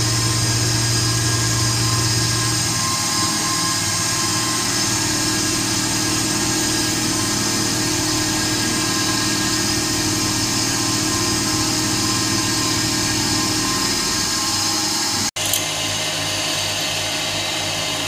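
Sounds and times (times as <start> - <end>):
milling machine cutting metal: 0.0 - 18.0.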